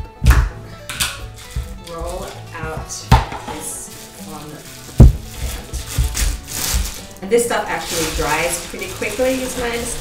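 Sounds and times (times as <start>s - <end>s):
plastic wrapping crinkling: 1.2s - 10.0s
knock on countertop: 2.7s - 3.6s, 5.0s - 5.2s
soft thumps: 5.0s - 6.9s.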